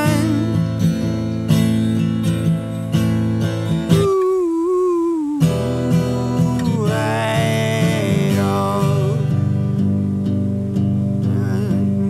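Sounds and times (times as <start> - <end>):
person singing: 0.0 - 0.8, 3.7 - 9.6, 11.2 - 12.0
acoustic guitar strumming: 0.0 - 12.0.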